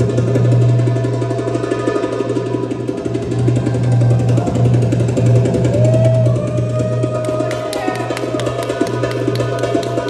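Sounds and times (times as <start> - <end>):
belly-dance music: 0.0 - 10.0.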